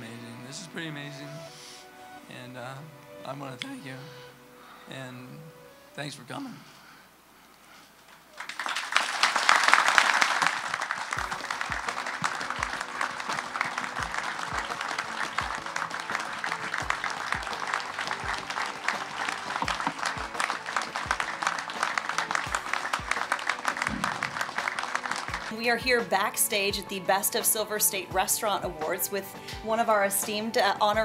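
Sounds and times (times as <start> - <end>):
people applauding: 8.1 - 27.3
music with steady beat: 11.2 - 31.0.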